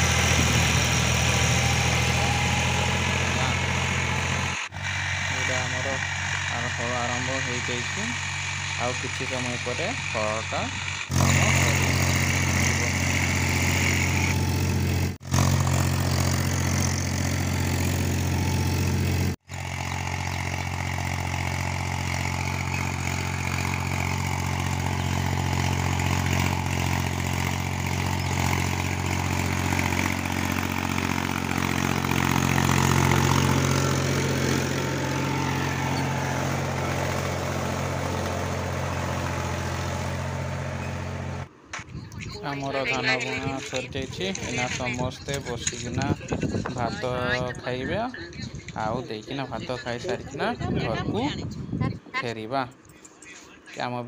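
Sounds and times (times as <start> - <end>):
diesel tractor engine running: 0.0 - 53.8.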